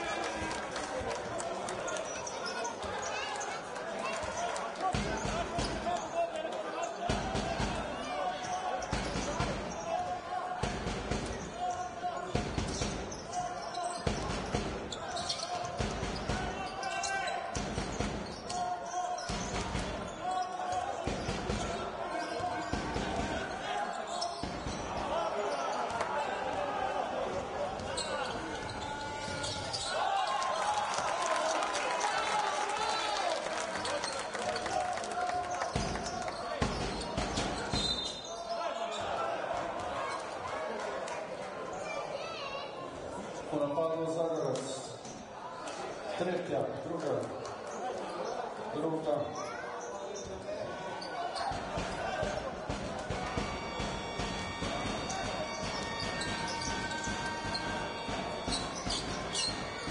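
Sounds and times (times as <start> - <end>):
voices of players and crowd: 0.0 - 59.9.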